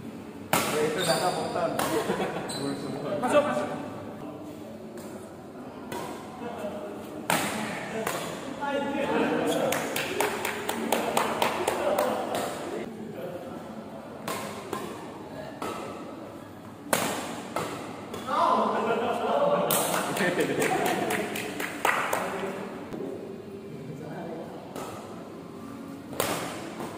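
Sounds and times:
rackets striking shuttlecock: 0.5 - 1.1, 14.2 - 15.0, 26.1 - 26.9.

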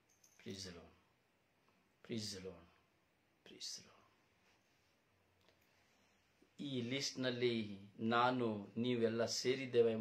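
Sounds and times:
man whispering breath: 3.4 - 4.9.

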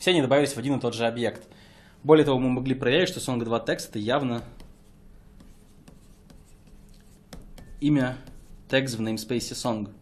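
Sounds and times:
stylus tapping and scratching tablet: 4.2 - 9.5.

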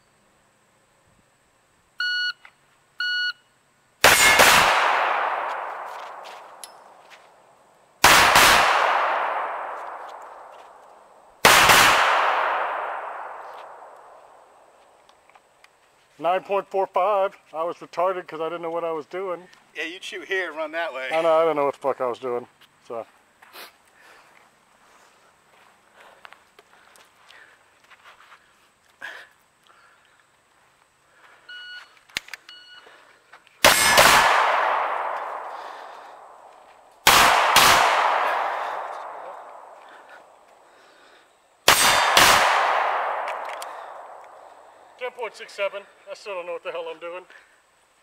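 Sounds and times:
ringing gunshot echo: 4.0 - 6.4, 8.0 - 10.5, 11.4 - 14.2, 33.6 - 36.3, 37.0 - 39.8, 41.7 - 44.3
pistol shots: 4.0 - 6.6, 8.0 - 10.6, 11.4 - 14.2, 33.6 - 36.4, 37.0 - 39.8, 41.6 - 44.5.

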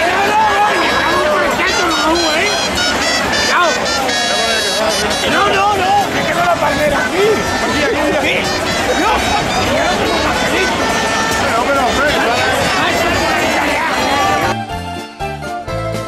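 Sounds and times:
crowd singing and calling out: 0.0 - 15.7.

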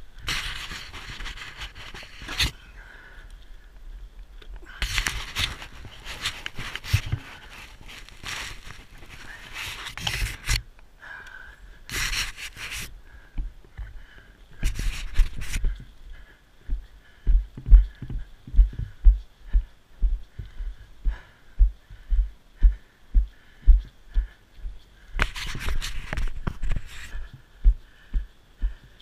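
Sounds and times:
rustling noise: 0.0 - 2.6, 4.7 - 10.7, 11.9 - 13.0, 14.6 - 16.2, 25.1 - 28.0
walking footsteps thudding: 16.6 - 29.0.

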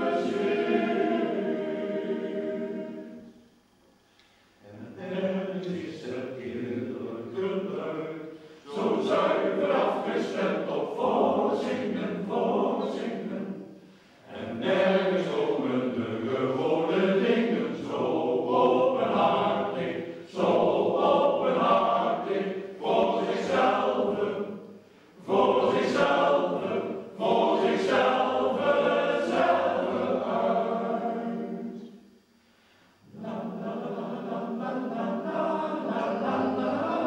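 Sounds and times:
male choir singing: 0.0 - 3.3, 4.6 - 24.6, 25.2 - 31.9, 33.1 - 37.0.

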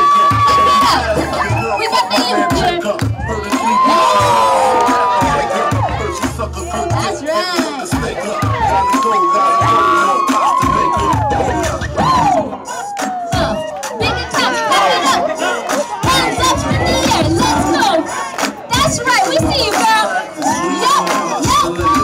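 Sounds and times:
long held shout: 0.0 - 7.0, 8.2 - 16.5, 19.9 - 22.0
break-dance music: 0.0 - 22.0
crowd cheering and whooping: 0.0 - 22.0.

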